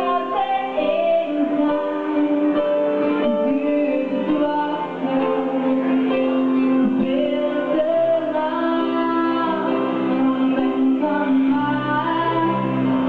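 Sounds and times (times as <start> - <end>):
keyboard backing music: 0.0 - 13.0
woman singing into microphone: 0.0 - 13.0.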